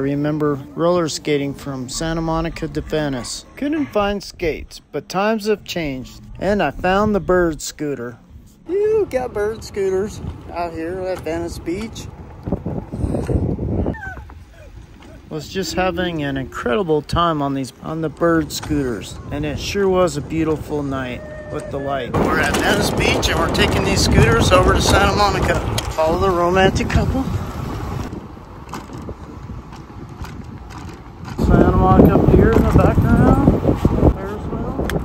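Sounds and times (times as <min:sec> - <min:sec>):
wind rumbling on microphone: 0:01.4 - 0:35.0
scooter rolling on pavement: 0:05.5 - 0:35.0.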